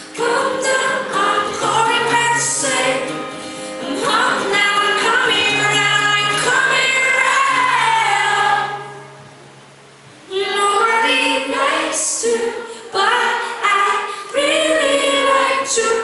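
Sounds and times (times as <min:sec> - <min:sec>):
women singing in harmony: 0:00.0 - 0:09.1, 0:10.3 - 0:16.0.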